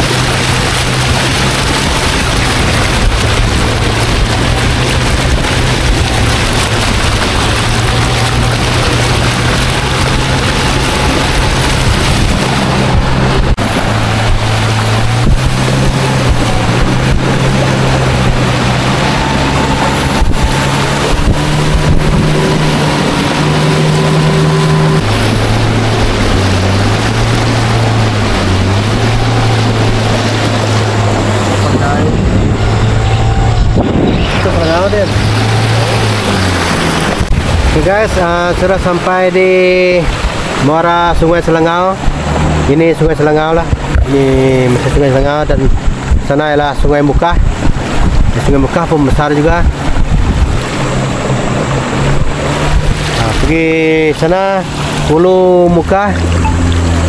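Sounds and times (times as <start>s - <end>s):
boat motor running: 0.0s - 57.0s
hiss of water and wind: 0.0s - 57.0s.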